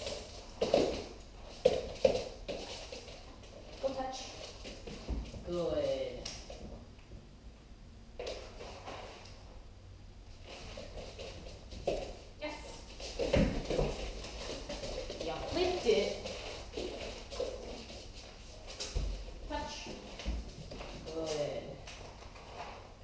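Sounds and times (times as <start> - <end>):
woman talking softly: 21.0 - 21.8.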